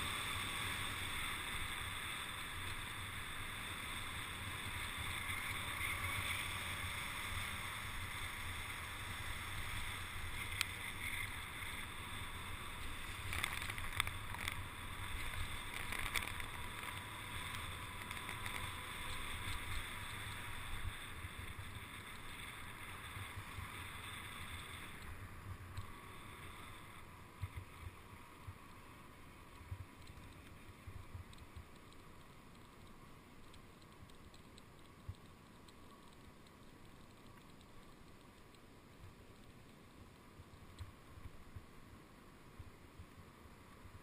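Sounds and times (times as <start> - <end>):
tyre hiss on wet asphalt: 0.0 - 44.0.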